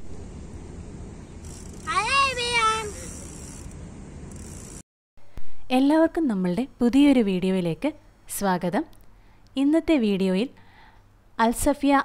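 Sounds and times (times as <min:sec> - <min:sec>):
boy calling out: 0:01.8 - 0:03.2.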